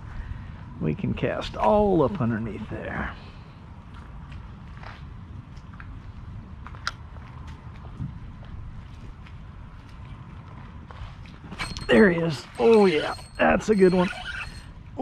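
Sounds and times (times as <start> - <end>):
wind rumble on microphone: 0.0 - 12.6.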